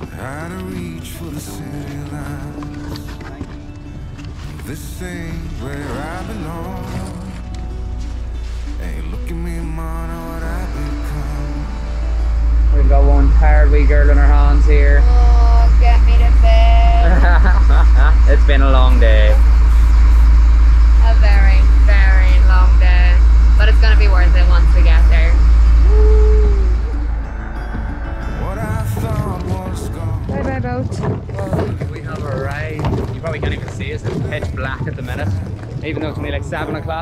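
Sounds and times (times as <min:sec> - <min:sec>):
people's voices: 0:00.0 - 0:07.8, 0:08.6 - 0:27.4, 0:28.0 - 0:37.0
loud low engine drone: 0:00.0 - 0:30.8
rough rumble with knocks: 0:26.6 - 0:37.0.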